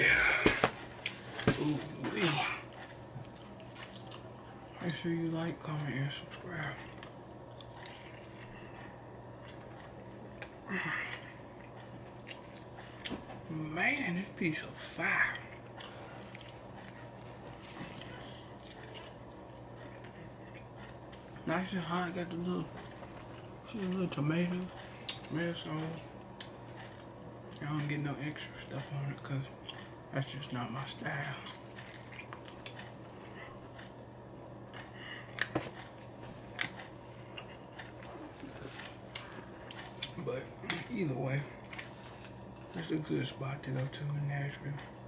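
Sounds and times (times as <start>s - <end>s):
low steady hum: 0.0s - 45.0s
chewing food: 0.3s - 13.5s, 14.2s - 45.0s.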